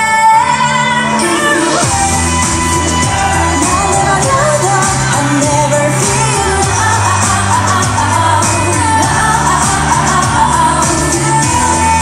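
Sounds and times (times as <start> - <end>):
dance-pop song with female vocals: 0.0 - 12.0.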